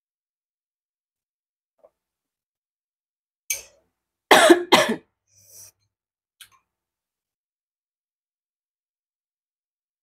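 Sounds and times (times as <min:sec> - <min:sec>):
woman coughing: 0:04.3 - 0:05.1.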